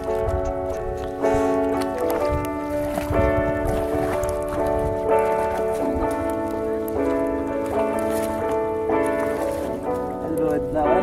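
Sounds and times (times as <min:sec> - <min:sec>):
background music chords: 0:00.0 - 0:11.0.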